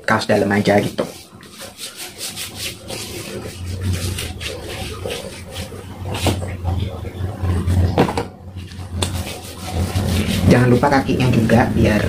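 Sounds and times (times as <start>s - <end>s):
hands rubbing skin swishing: 0.4s - 7.8s, 8.6s - 11.4s.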